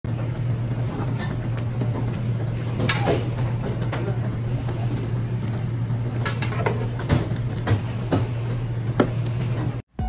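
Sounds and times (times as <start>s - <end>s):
kitchen equipment rumble: 0.1s - 9.8s.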